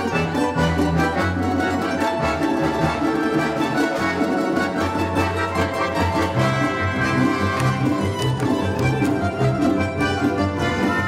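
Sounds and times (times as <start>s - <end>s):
plucked string orchestra playing: 0.0s - 11.0s.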